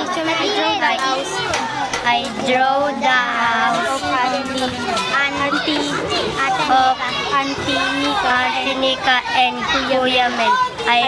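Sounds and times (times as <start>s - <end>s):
children playing: 0.0s - 11.0s
children talking: 0.0s - 11.0s.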